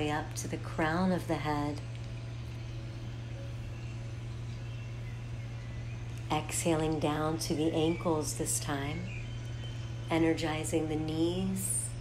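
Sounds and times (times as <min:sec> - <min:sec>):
low hum with faint higher tones: 0:00.0 - 0:12.0.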